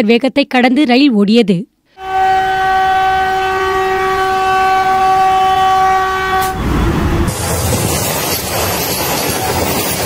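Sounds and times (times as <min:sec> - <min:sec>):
train horn long blast: 0:01.9 - 0:07.4
train running rumble: 0:06.3 - 0:10.0.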